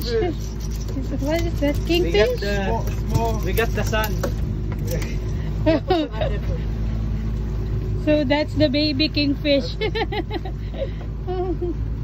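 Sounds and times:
outboard motors droning: 0.0s - 12.0s.

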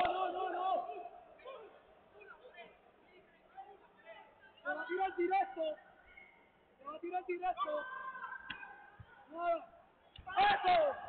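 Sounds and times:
people shouting: 0.0s - 1.7s, 10.3s - 11.0s.

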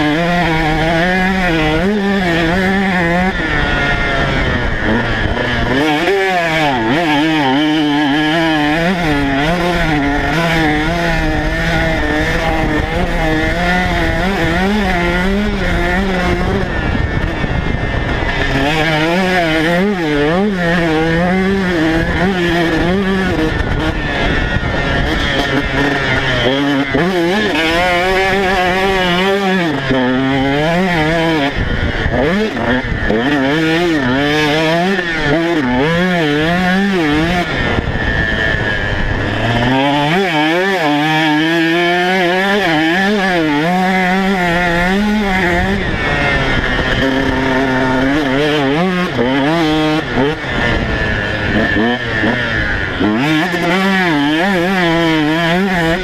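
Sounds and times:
motocross engine revving: 0.0s - 56.0s.

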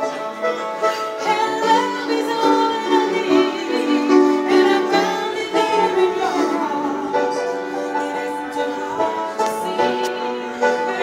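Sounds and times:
piano accompaniment: 0.0s - 11.0s.

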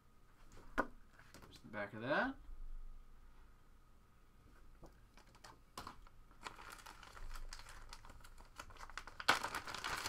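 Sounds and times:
plastic mailer crackling: 5.2s - 10.0s.

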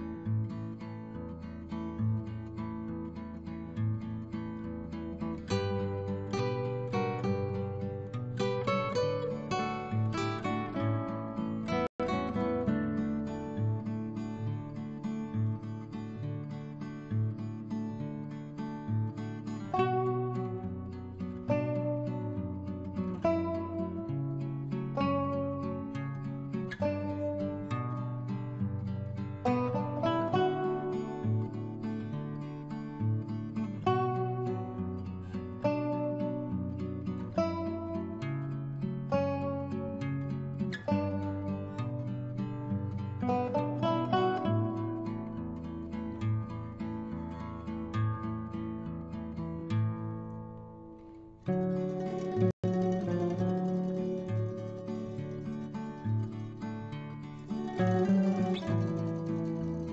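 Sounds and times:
plucked-string instrumental music: 0.0s - 59.9s.

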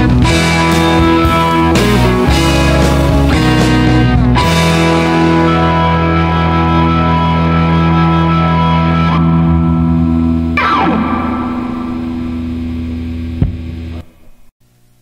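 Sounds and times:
distorted electric guitar chord: 0.0s - 14.2s
guitar string slide: 8.7s - 14.4s
short thump: 13.4s - 13.8s.

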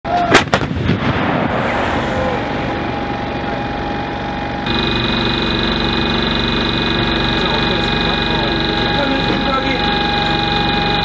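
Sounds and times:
artillery gun blast: 0.2s - 2.1s
rolling rumble of echoes: 0.3s - 7.4s
steady high hum: 1.7s - 11.0s.

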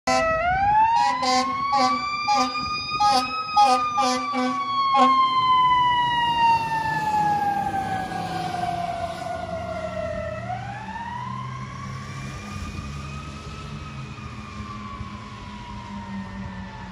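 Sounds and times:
fire engine siren wailing: 0.1s - 16.9s.

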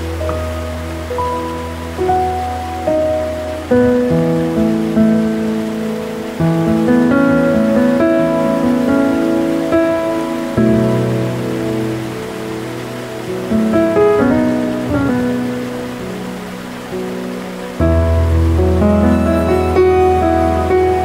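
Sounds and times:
gentle solo piano music: 0.0s - 21.0s
waterfall rushing water: 0.0s - 21.0s.

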